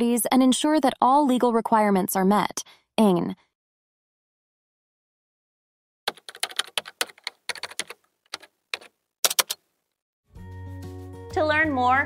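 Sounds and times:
computer keyboard typing: 6.1 - 9.6.

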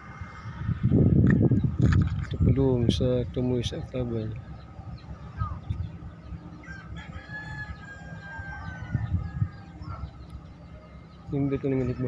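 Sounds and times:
steady low rumble: 0.0 - 12.0
rooster crowing: 6.6 - 10.0.

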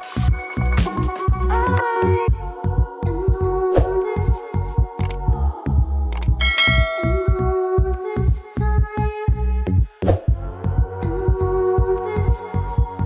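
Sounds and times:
music with deep beat and bells: 0.0 - 3.5, 6.2 - 8.9
bright chime: 6.4 - 7.6.

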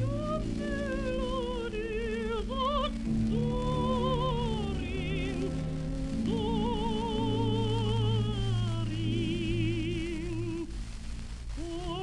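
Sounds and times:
soprano singing with vibrato: 0.0 - 10.8, 11.6 - 12.0.

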